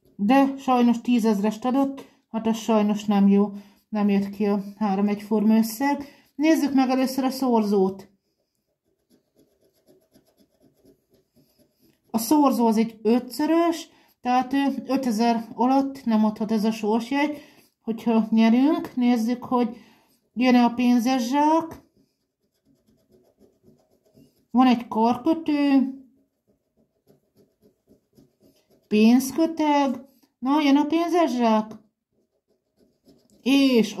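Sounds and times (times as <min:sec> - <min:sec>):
coin scratching lottery ticket: 0:08.8 - 0:12.4, 0:22.4 - 0:29.6.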